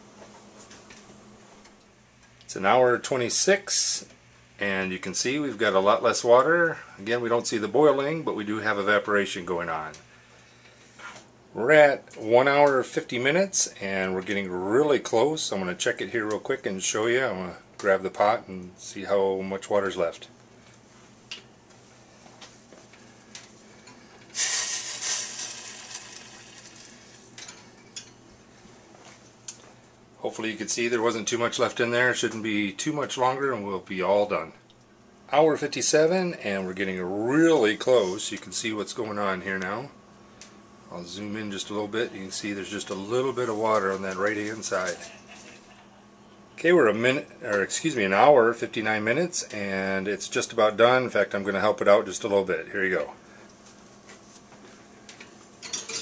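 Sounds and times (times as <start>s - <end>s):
low steady hum: 0.0s - 56.0s
water sizzling on hot glass: 24.3s - 27.6s.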